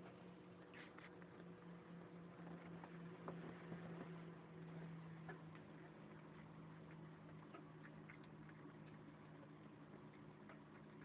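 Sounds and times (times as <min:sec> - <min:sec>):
cat chewing and licking food: 0:00.0 - 0:11.0
steady low hum: 0:00.0 - 0:11.0.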